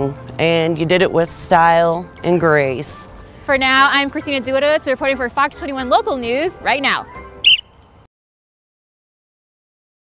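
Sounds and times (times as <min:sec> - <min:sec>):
short high-pitched chirp: 0:07.4 - 0:07.8.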